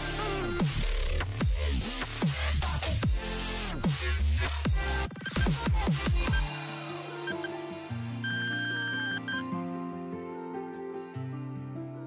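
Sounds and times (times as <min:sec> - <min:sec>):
long electronic beep: 0:07.3 - 0:07.5, 0:08.2 - 0:09.4.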